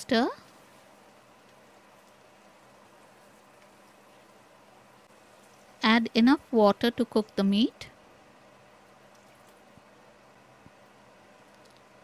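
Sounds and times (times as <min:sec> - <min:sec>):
person speaking: 0:00.0 - 0:00.4, 0:05.8 - 0:07.9.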